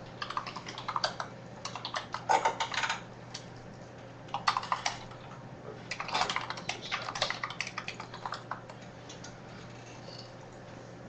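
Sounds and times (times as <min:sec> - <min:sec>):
computer keyboard typing: 0:00.1 - 0:03.0, 0:04.3 - 0:05.3, 0:05.9 - 0:09.3.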